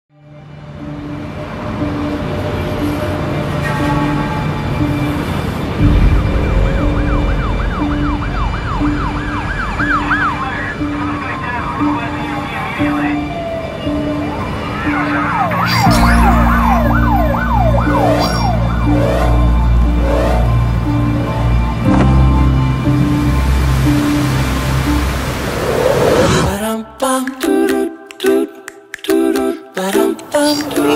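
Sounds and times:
emergency siren yelping and wailing: 1.8s - 21.9s
deep rumble: 3.8s - 11.0s
steady pulsing beat: 4.7s - 12.9s, 13.9s - 23.6s.

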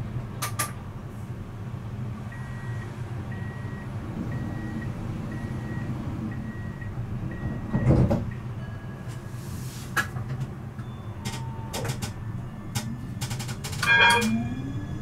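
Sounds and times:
tram equipment humming: 0.0s - 15.0s
short high beeps: 13.8s - 15.0s.

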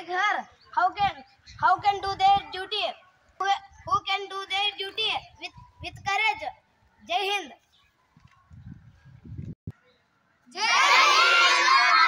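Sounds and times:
children shouting a cheer: 10.6s - 12.0s.

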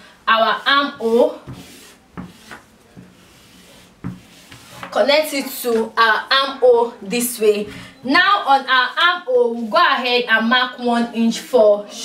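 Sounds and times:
chalk rubbing on fabric: 0.5s - 5.6s.

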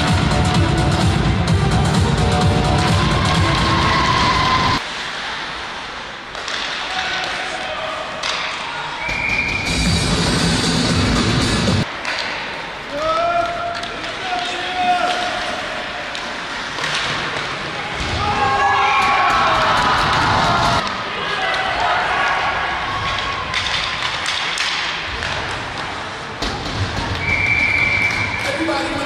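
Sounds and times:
loud background music: 0.0s - 4.8s, 9.5s - 11.9s
players shouting: 2.7s - 4.8s, 17.9s - 23.6s
hockey sticks and puck knocking: 6.3s - 7.6s, 8.2s - 9.3s, 13.0s - 18.1s, 23.1s - 28.7s.

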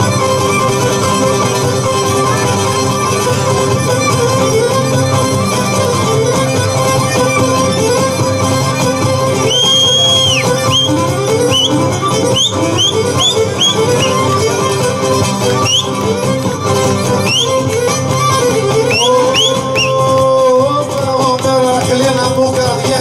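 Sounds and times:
folk dance music on strings: 0.0s - 23.0s.

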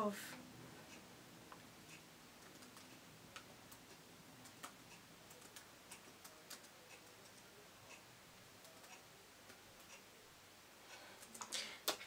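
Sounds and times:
laptop keys clicking: 2.4s - 7.4s.

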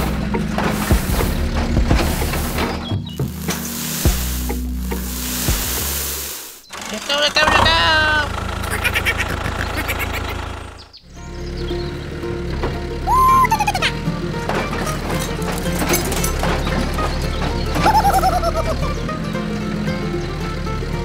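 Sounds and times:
music: 0.0s - 6.3s, 11.1s - 21.0s
sand pouring into plastic trailer: 0.0s - 7.4s
low motor hum: 0.0s - 21.0s
warbling whistle sound effects: 13.1s - 13.8s.

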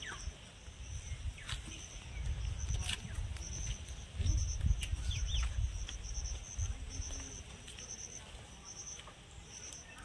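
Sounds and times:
insect chirping in trills: 0.0s - 10.0s.

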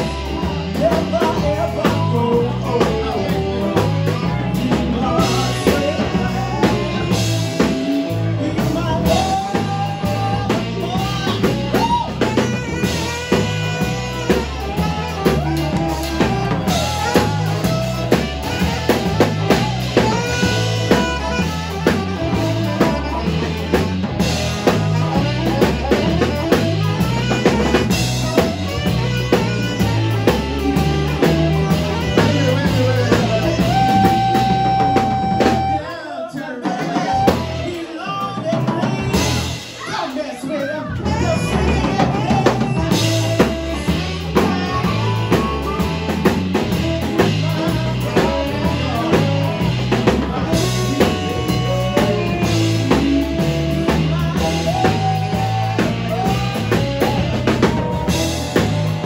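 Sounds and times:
bass: 0.0s - 59.0s
drum kit beat: 0.0s - 59.0s
harmonica: 0.0s - 59.0s
saxophone: 0.0s - 59.0s.

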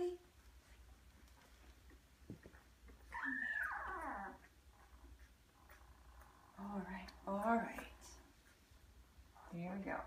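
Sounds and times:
puppy whimpering cry: 3.0s - 6.4s.

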